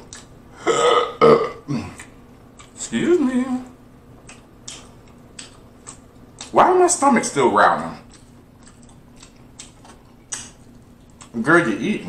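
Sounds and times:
man burping: 0:00.6 - 0:02.0.

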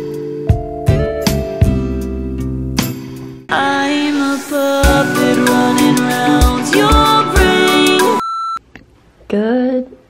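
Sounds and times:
music: 0:00.0 - 0:08.2.

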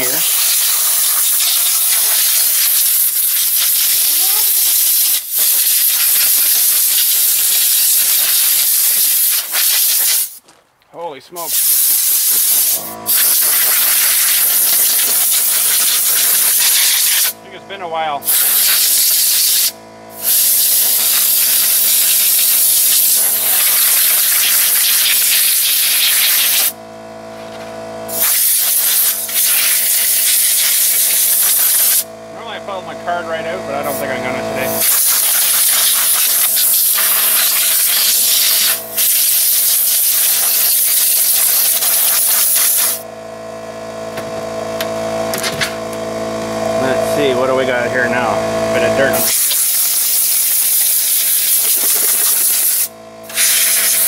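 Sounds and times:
compressed air hissing: 0:00.0 - 0:10.4, 0:11.4 - 0:17.4, 0:18.2 - 0:26.8, 0:28.1 - 0:32.1, 0:33.8 - 0:43.0, 0:49.2 - 0:54.0.

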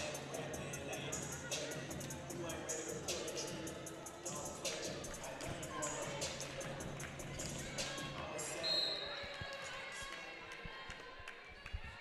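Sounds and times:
referee's whistle: 0:08.6 - 0:09.2.

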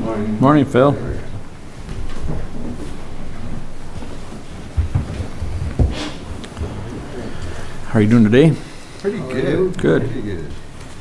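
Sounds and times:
low rumbling: 0:00.0 - 0:11.0
dull thumps: 0:01.1 - 0:08.5.

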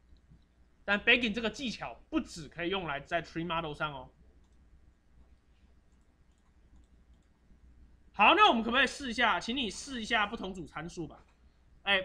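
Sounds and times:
low steady hum: 0:00.0 - 0:12.0
computer mouse clicks: 0:04.4 - 0:07.4.

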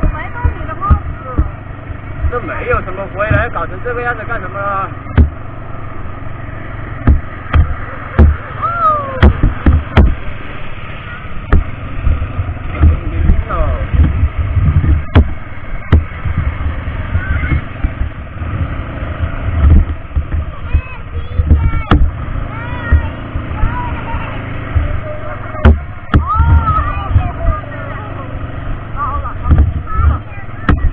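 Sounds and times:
sharp knocks over bumps: 0:00.0 - 0:05.5, 0:06.9 - 0:10.4, 0:11.4 - 0:27.8, 0:29.0 - 0:30.9
atv engine rumble: 0:00.0 - 0:30.9
wind buffeting microphone: 0:00.0 - 0:30.9.

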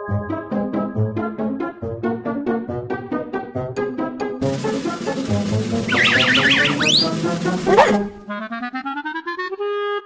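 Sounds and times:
cartoon soundtrack music: 0:00.0 - 0:10.0
warbling wobbling tone: 0:05.0 - 0:08.2
quick rising whistle: 0:05.9 - 0:07.3.

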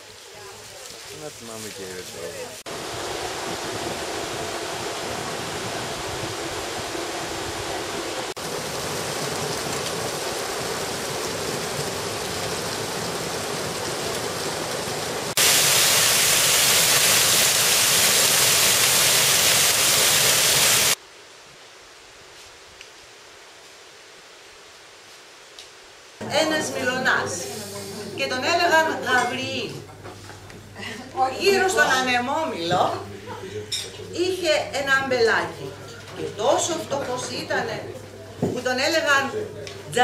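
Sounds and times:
running water rushing: 0:00.0 - 0:22.2.

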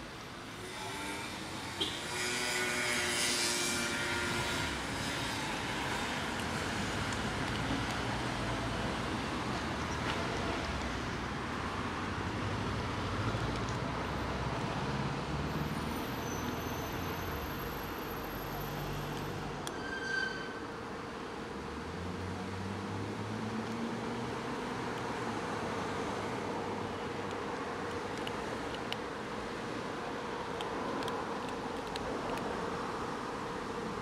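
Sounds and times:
street traffic passing: 0:00.0 - 0:34.0.

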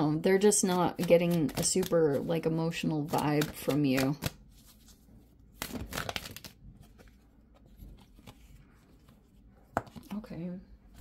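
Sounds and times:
cards being shuffled: 0:00.4 - 0:10.2.

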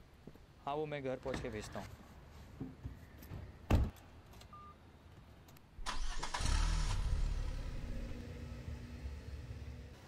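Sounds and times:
car starter cranking: 0:05.8 - 0:07.6
car engine revving and idling: 0:06.3 - 0:10.0.

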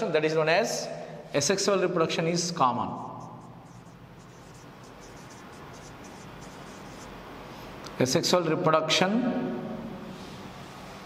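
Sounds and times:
marker scratching on whiteboard: 0:03.0 - 0:07.8.

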